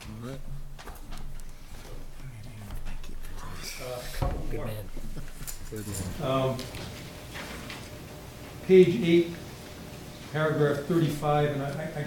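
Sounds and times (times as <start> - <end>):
papers being handled: 4.1 - 12.0.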